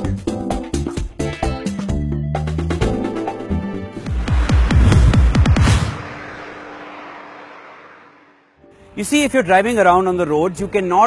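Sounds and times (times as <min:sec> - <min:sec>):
rushing noise: 0:03.8 - 0:08.7.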